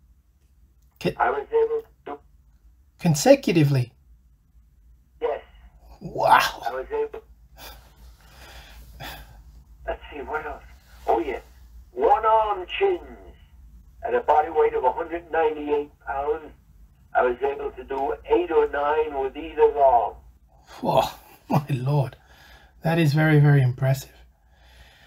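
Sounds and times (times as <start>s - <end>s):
man speaking: 1.0s - 2.2s, 3.0s - 3.9s, 5.2s - 7.8s, 9.8s - 13.4s, 14.0s - 22.2s, 22.8s - 24.2s.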